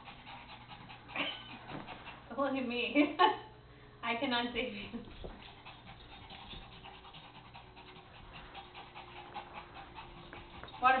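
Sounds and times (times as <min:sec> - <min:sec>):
small dog panting: 0:00.0 - 0:02.6, 0:05.0 - 0:11.0.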